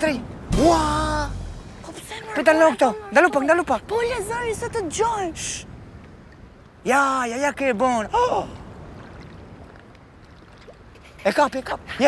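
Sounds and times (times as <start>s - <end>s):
faint outdoor background noise: 0.0s - 12.0s
man shouting: 0.6s - 1.4s.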